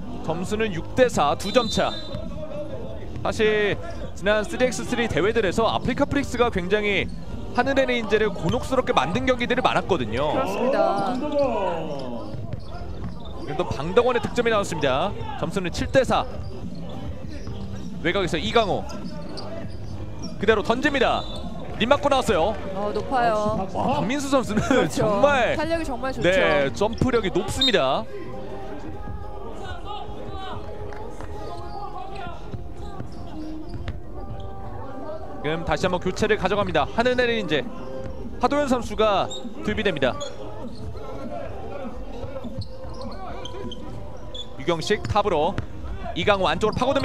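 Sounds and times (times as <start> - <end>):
voices: 0.2 - 47.0.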